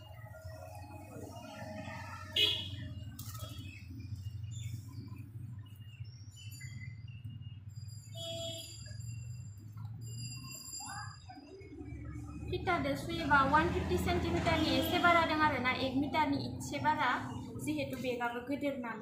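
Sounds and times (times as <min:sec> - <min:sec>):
birds chirping: 0:00.0 - 0:18.8.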